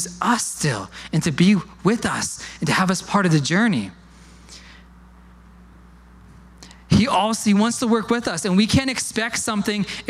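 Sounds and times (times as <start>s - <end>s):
man's amplified voice: 0.0s - 4.0s, 6.9s - 10.0s
steady low hum: 0.0s - 10.0s.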